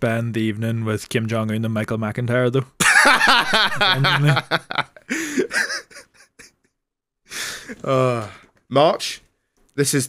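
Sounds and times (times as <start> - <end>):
man laughing: 2.8 - 6.6.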